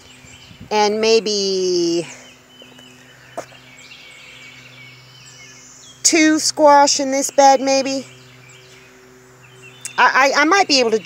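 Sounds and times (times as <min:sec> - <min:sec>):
distant birds calling: 0:00.0 - 0:11.0
low steady hum: 0:00.0 - 0:11.0.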